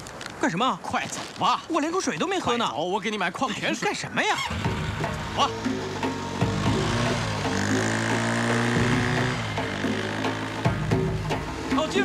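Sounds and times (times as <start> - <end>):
background music: 4.2 - 12.0
small motorcycle engine running: 4.4 - 12.0.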